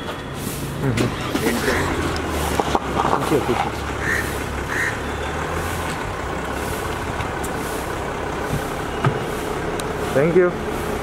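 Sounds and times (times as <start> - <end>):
street traffic noise: 0.0 - 11.0
low engine hum: 0.1 - 11.0.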